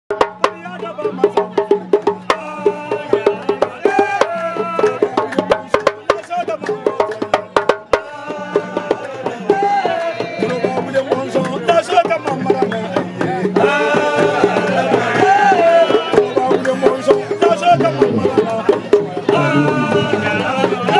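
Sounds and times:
hand drums fast rhythm: 0:00.1 - 0:20.9
voices singing: 0:00.4 - 0:20.9.

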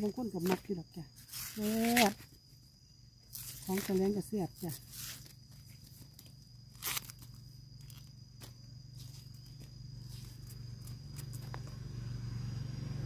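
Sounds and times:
knife slicing bamboo shoot: 0:01.2 - 0:02.3, 0:06.7 - 0:08.1
husk sheaths splitting and tearing: 0:05.1 - 0:08.6.

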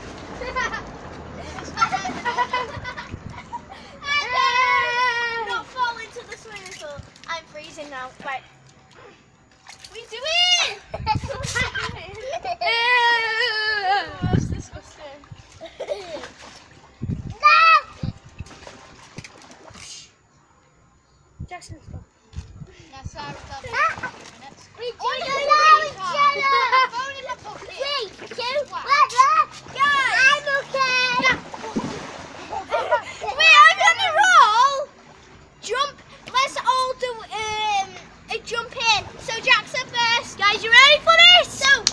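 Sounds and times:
water splashing: 0:00.0 - 0:08.3, 0:14.8 - 0:20.2, 0:23.2 - 0:41.9
children's high-pitched voices: 0:00.4 - 0:09.2, 0:09.8 - 0:16.3, 0:17.2 - 0:18.2, 0:22.8 - 0:31.8, 0:32.4 - 0:35.0, 0:35.6 - 0:41.9.

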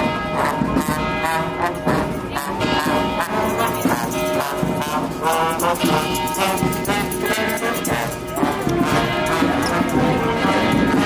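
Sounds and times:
brass band horns: 0:00.0 - 0:11.0
steady drum beat: 0:00.0 - 0:11.0.

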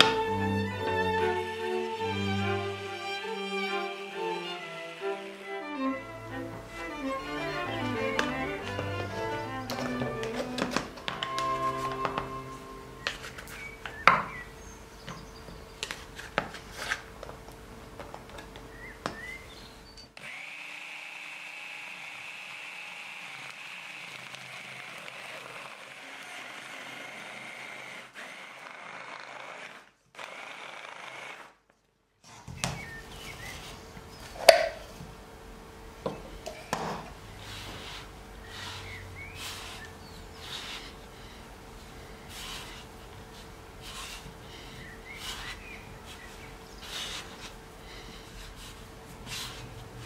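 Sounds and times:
electric chopper motor running: 0:20.2 - 0:31.5.

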